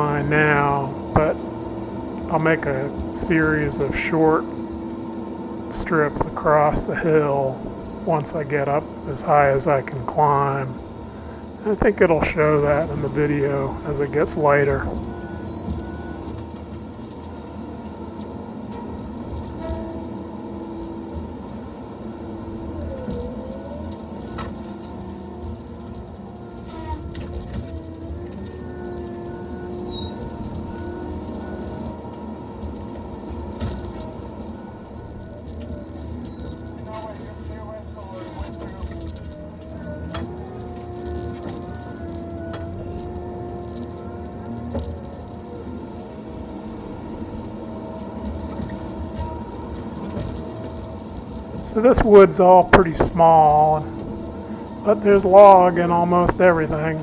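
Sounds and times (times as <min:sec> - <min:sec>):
diesel engine and hydraulics: 0:00.0 - 0:57.0
disc saw whining: 0:00.0 - 0:57.0.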